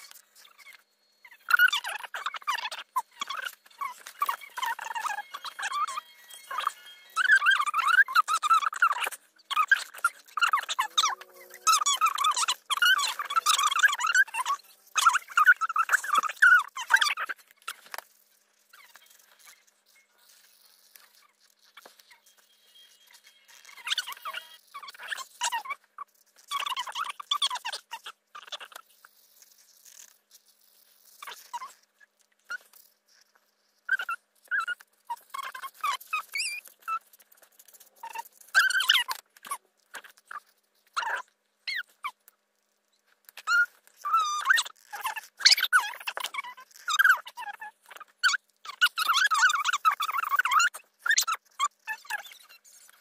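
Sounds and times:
marker tips squeaking on paper: 0.0s - 53.0s.

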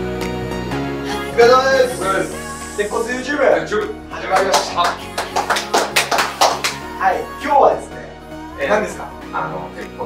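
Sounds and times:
background music: 0.0s - 10.0s
hands clapping: 4.2s - 6.9s.

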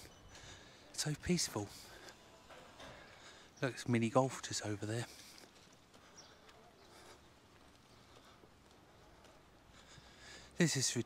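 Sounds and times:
faint street ambience: 0.0s - 11.0s.

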